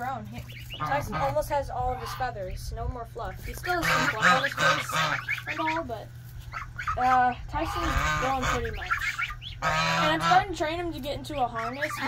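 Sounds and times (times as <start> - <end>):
low background hum: 0.0 - 12.0
young goose call: 0.4 - 2.5, 3.4 - 12.0.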